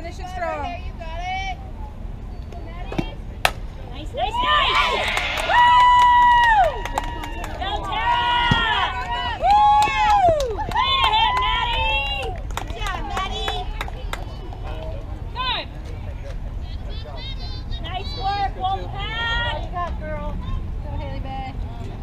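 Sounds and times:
bat hitting ball: 0:02.9 - 0:03.7
spectators yelling and cheering: 0:04.2 - 0:15.7.

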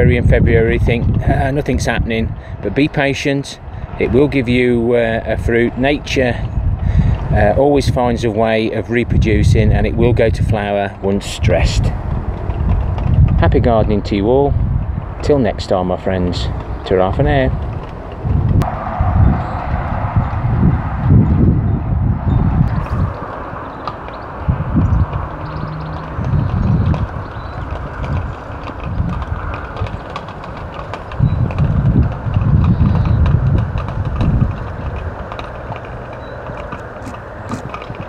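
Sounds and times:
wind buffeting microphone: 0:00.0 - 0:38.0
steady rushing sound: 0:09.0 - 0:38.0.

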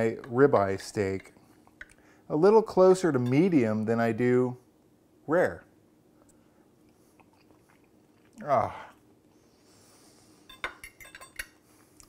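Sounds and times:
knife and fork clinking on plate: 0:10.5 - 0:11.6.

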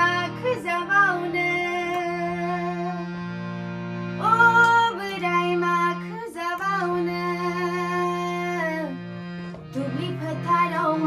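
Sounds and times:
woman singing folk song: 0:00.0 - 0:03.1, 0:04.2 - 0:09.0, 0:09.7 - 0:11.0
harmonium drone: 0:00.0 - 0:11.0.

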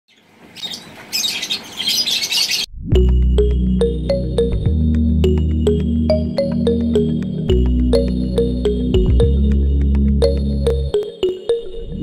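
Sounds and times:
birds chirping and chattering: 0:00.1 - 0:02.7.

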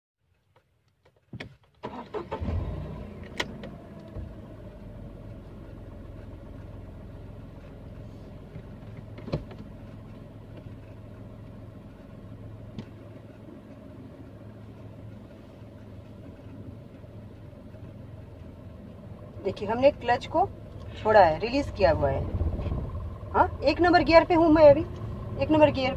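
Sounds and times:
car engine starting and idling: 0:00.3 - 0:25.9.

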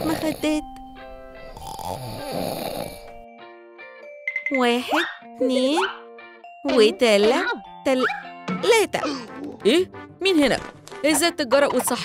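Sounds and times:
light background music: 0:00.0 - 0:12.0
man snoring: 0:01.5 - 0:03.2.

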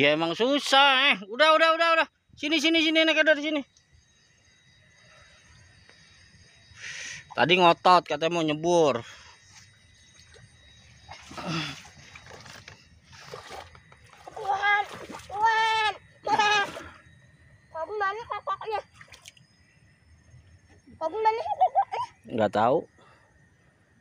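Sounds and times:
wading through shallow water: 0:09.4 - 0:17.2
water splashing: 0:11.1 - 0:17.0, 0:18.8 - 0:19.4.

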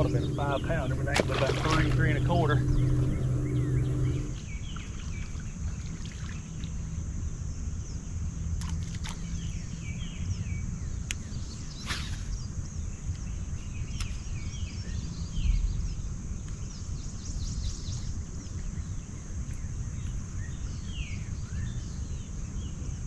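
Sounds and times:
steady high-pitched drone: 0:00.0 - 0:04.4
small birds chirping: 0:00.0 - 0:06.3
low steady hum: 0:00.0 - 0:07.4
wind rumble on microphone: 0:00.0 - 0:23.0.

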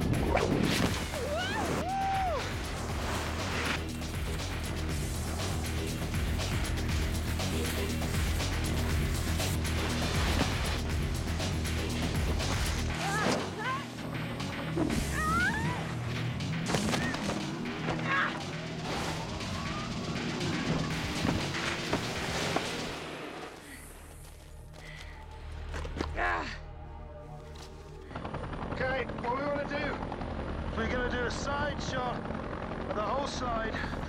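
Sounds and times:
driving action film score: 0:00.0 - 0:34.0.

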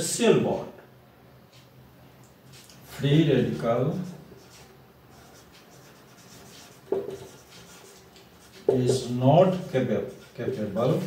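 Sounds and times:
marker writing on whiteboard: 0:01.4 - 0:11.0.

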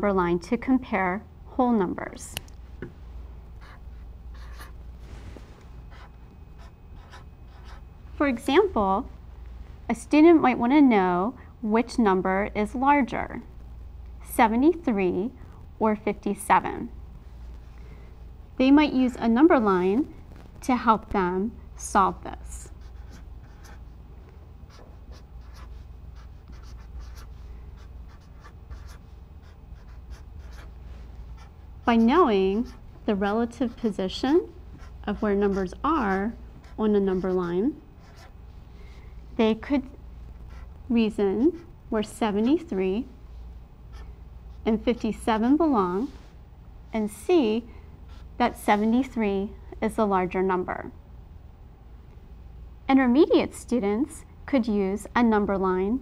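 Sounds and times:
steady low hum: 0:00.0 - 0:56.0
marker drawing on a surface: 0:03.6 - 0:04.8, 0:05.9 - 0:07.8, 0:22.6 - 0:23.9, 0:24.7 - 0:38.4, 0:40.4 - 0:40.7.

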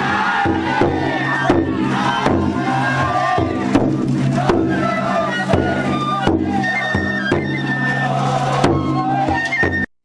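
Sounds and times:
crowd shouting and chanting: 0:00.0 - 0:09.9
festival music: 0:00.0 - 0:09.9
taiko drum beats: 0:00.0 - 0:09.9.

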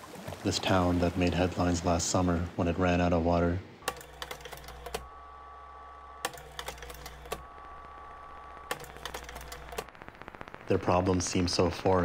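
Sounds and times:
steady low hum: 0:03.6 - 0:12.0.

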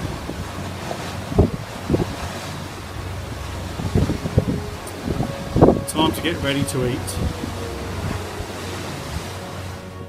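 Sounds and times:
low hum: 0:00.0 - 0:10.0
sea rushing: 0:00.0 - 0:10.0
wind buffeting microphone: 0:00.0 - 0:10.0.

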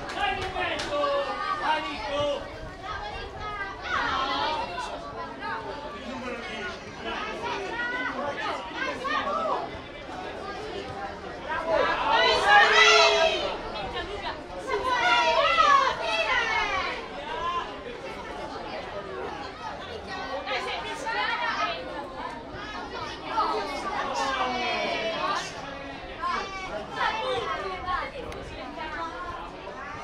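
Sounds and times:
voices shouting: 0:11.5 - 0:14.0, 0:14.6 - 0:17.8.

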